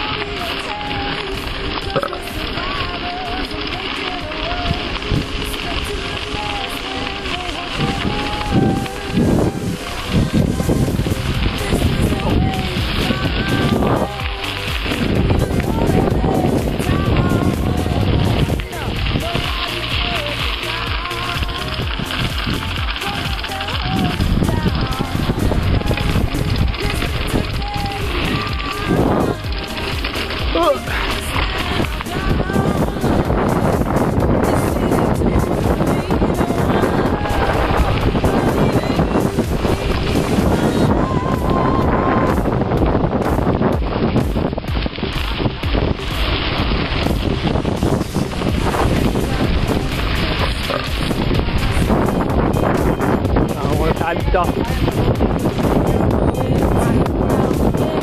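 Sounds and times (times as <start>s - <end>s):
faint voices: 0.0s - 42.5s, 44.6s - 58.0s
wind rushing over microphone: 0.0s - 58.0s.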